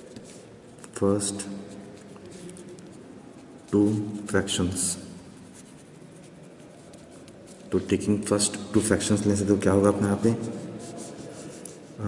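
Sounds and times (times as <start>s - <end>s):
pen scratching on paper: 0.0s - 7.8s, 9.8s - 12.0s
man speaking: 0.9s - 1.9s, 3.7s - 5.2s, 7.7s - 10.7s.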